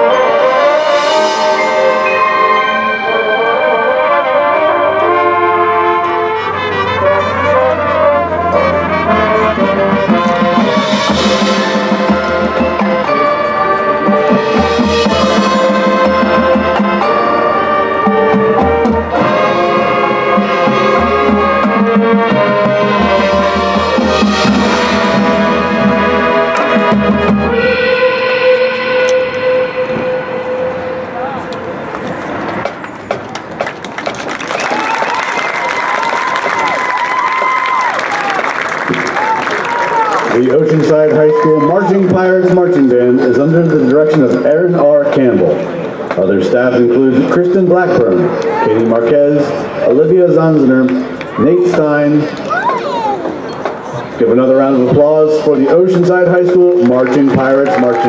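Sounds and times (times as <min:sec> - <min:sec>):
marching band brass: 0:00.0 - 0:58.0
crowd cheering and applauding: 0:32.7 - 0:42.2, 0:55.9 - 0:58.0.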